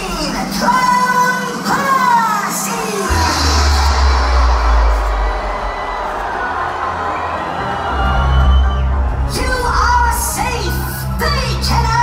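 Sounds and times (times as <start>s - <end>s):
live concert music: 0.0s - 12.0s
crowd cheering: 0.7s - 11.2s
deep bass: 3.1s - 7.2s.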